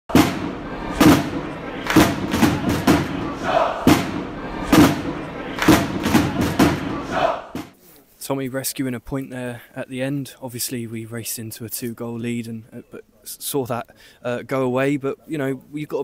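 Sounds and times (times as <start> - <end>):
heavy thudding beat: 0.1 - 7.8
crowd-like shouts: 0.5 - 7.6.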